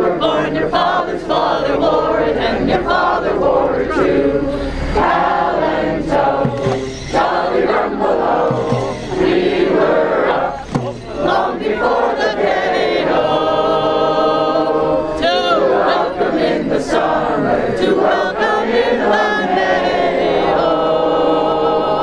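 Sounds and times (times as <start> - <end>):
crowd singing outdoors: 0.0 - 22.0
people calling out: 3.7 - 12.8.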